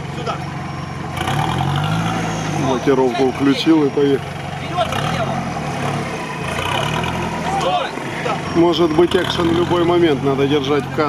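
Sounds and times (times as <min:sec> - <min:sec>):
engine running at low revs: 0:00.0 - 0:11.0.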